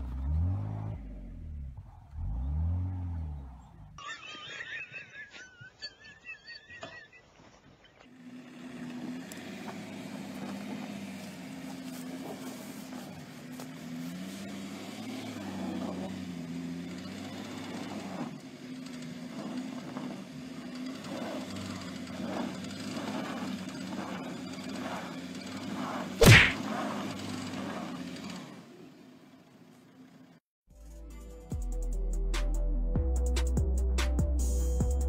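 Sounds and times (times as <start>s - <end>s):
car engine revving: 0.0s - 4.4s, 8.1s - 29.6s.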